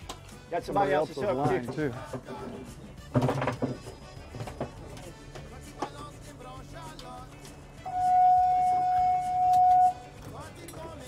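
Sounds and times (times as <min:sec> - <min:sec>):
background music: 0:00.0 - 0:11.0
steady high note: 0:07.9 - 0:10.0.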